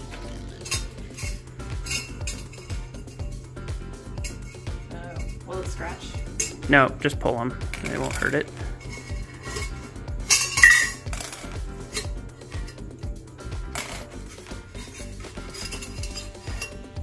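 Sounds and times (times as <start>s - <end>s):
metal springs clinking: 0.5s - 3.4s, 4.1s - 5.6s, 6.2s - 6.7s, 7.7s - 13.0s, 13.7s - 17.0s.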